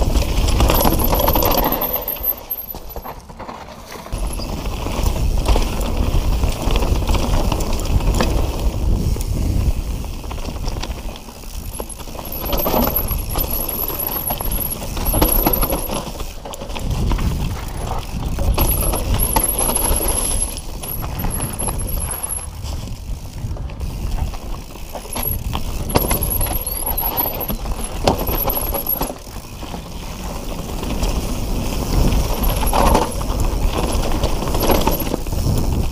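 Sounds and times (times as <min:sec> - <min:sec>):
bike rattling and clicking: 0:00.0 - 0:35.9
bike tyres rolling over leaves: 0:00.0 - 0:35.9.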